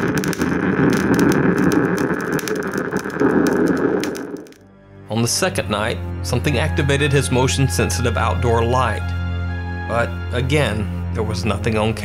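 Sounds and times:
loud noisy drone with crackles: 0:00.0 - 0:04.6.

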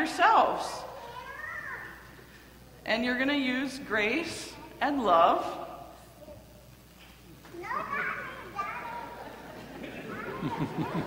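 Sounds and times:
children talking: 0:00.6 - 0:02.8, 0:07.3 - 0:11.0.

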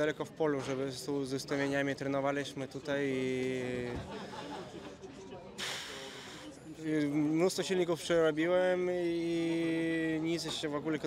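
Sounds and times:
faint background noise: 0:00.0 - 0:11.0
sharp breath drawn in: 0:05.6 - 0:06.6.

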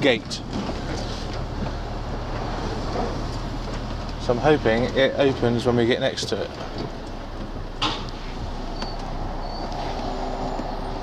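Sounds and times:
diesel truck engine droning: 0:00.0 - 0:11.0.

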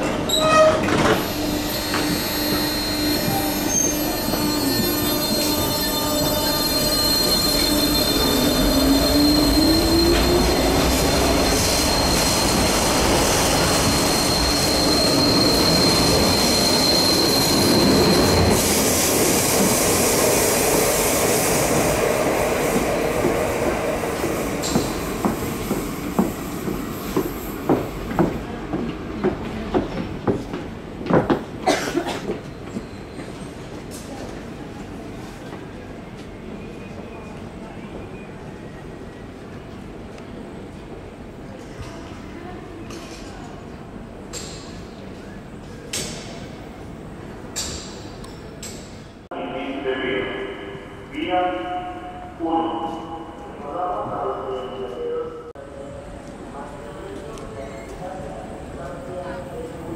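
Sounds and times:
train rolling noise: 0:00.0 - 0:36.4
train wheel squeal: 0:00.3 - 0:18.8, 0:32.4 - 0:33.7.

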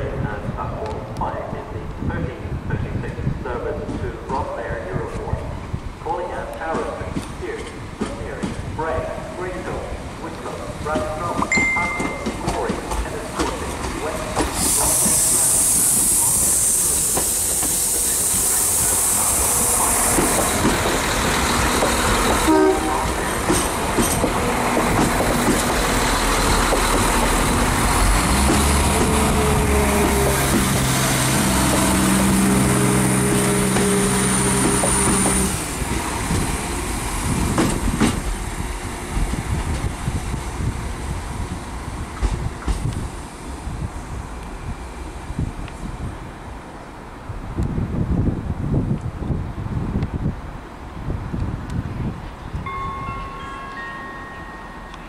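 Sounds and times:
train wheels clicking over rail joints: 0:06.5 - 0:08.8, 0:10.7 - 0:43.3
loud high hiss: 0:14.0 - 0:23.9.

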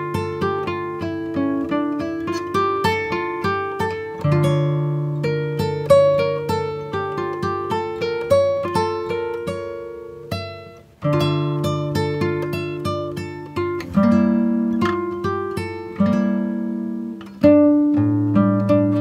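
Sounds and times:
plucked guitar-like music: 0:00.0 - 0:19.0.

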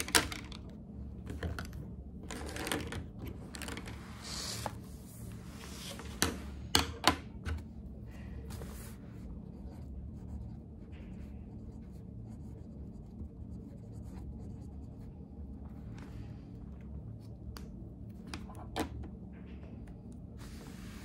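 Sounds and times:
pen scratching on paper: 0:08.7 - 0:15.2.

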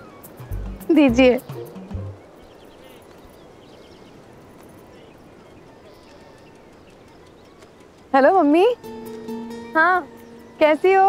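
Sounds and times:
faint distant voices: 0:02.2 - 0:09.0.

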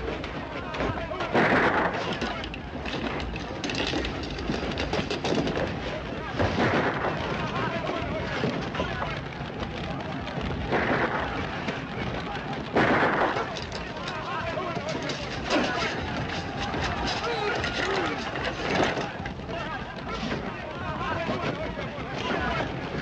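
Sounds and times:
sharp bangs: 0:00.0 - 0:23.0
steady rush of noise: 0:00.0 - 0:23.0
men shouting and grunting: 0:13.3 - 0:23.0.

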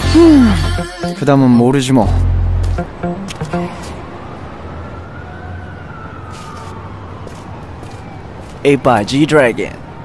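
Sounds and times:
siren wail: 0:02.8 - 0:08.4.

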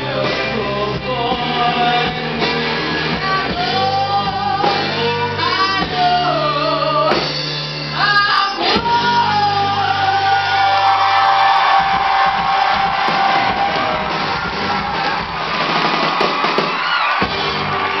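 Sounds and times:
audience cheering and whooping: 0:09.6 - 0:18.0.

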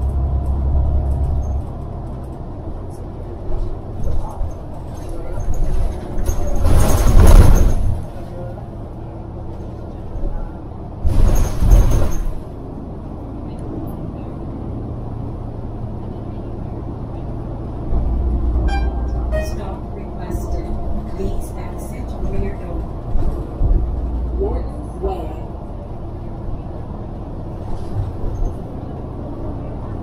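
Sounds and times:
bus diesel engine: 0:00.0 - 0:30.0
road noise: 0:00.0 - 0:30.0.

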